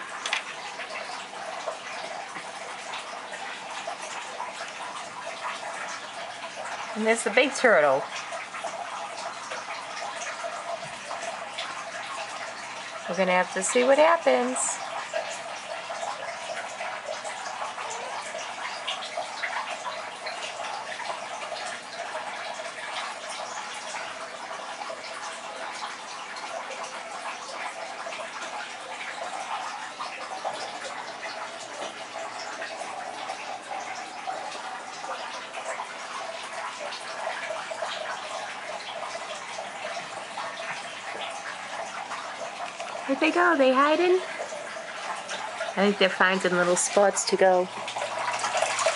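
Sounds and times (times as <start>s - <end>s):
water splashing and trickling: 0.0s - 48.9s.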